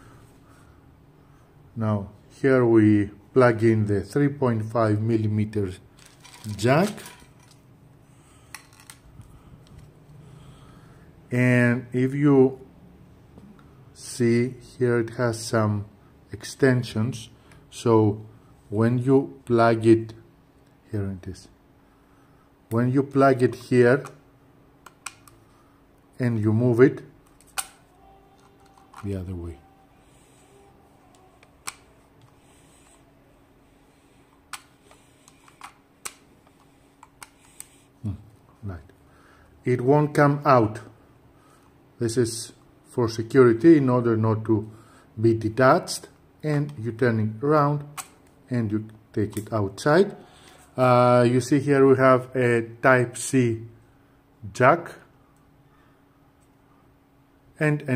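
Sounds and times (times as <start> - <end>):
faint handling noise: 5.9 - 10.2
headset cable handling: 6.0 - 7.6, 8.5 - 10.2, 28.4 - 29.3, 34.3 - 37.8.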